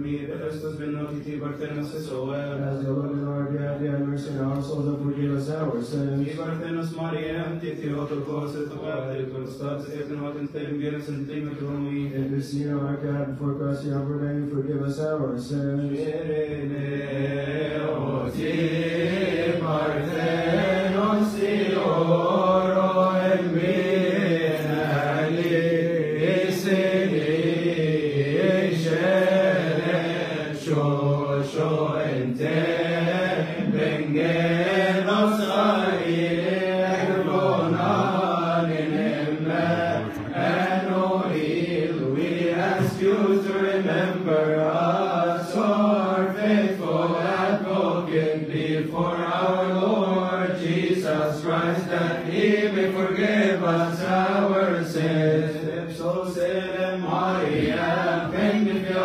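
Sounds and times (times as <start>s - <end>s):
men chanting a hymn: 0.0s - 59.0s.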